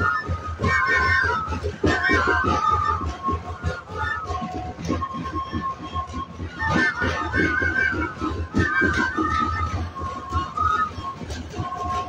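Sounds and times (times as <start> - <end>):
crowd voices: 0.0 - 12.0
wooden flutes playing: 0.0 - 12.0.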